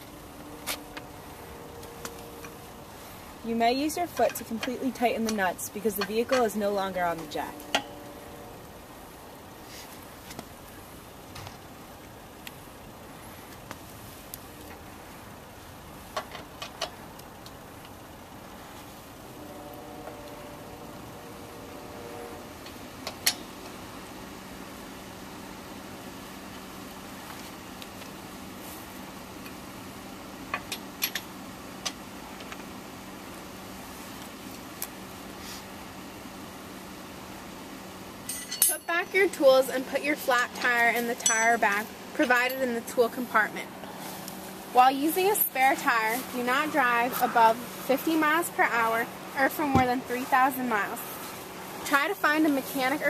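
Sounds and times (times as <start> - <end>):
steady low tone: 0.0 - 9.6
steady low hum: 0.0 - 53.0
lug wrench clicking on wheel nuts: 30.5 - 32.0.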